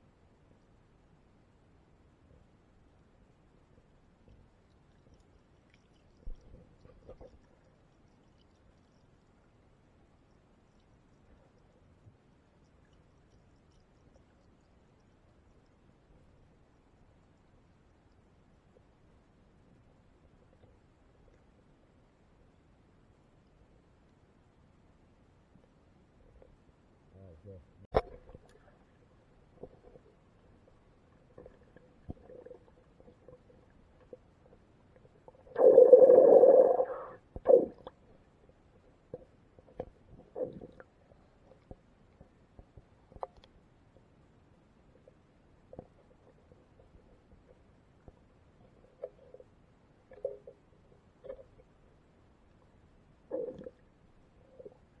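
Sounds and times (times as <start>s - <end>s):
muffled rumble of pool water: 0.0s - 55.0s
muffled underwater water stirring: 27.8s - 43.3s
gurgling water surge: 35.5s - 37.9s.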